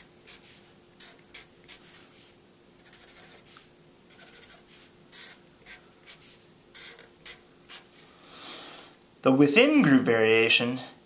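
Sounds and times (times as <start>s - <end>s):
marker drawing on paper: 0.0s - 8.0s.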